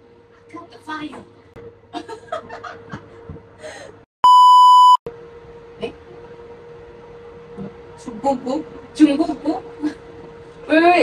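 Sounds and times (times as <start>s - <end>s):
censor bleep: 4.2s - 5.0s.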